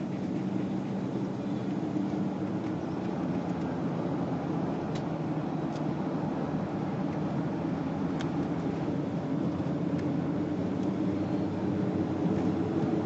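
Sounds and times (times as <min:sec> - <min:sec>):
car engine droning: 0:00.0 - 0:13.0
tyre and road noise: 0:00.0 - 0:13.0.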